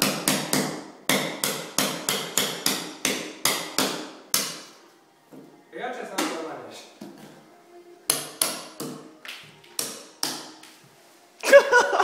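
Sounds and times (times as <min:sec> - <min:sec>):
hammer striking wall: 0:00.0 - 0:04.7.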